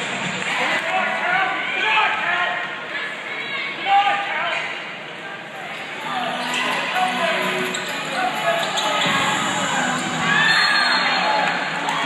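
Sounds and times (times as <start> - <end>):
crowd chatter: 0.0 - 12.0
sneakers squeaking: 6.2 - 11.6.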